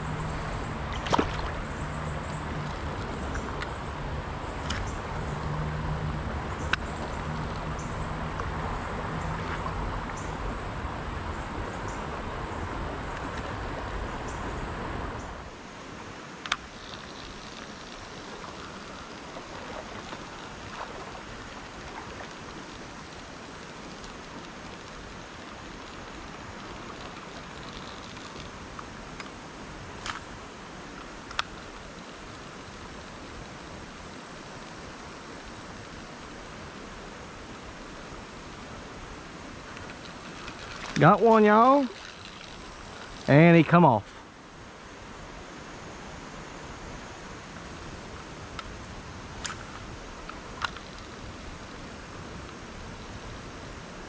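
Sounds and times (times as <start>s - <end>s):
creek water running over rocks: 0.0s - 54.0s
faint clicks: 16.4s - 20.5s, 30.0s - 32.4s.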